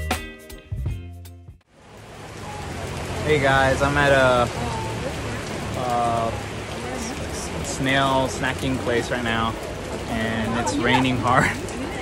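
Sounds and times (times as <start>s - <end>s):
background music: 0.0s - 1.6s
hard rain: 1.6s - 12.0s.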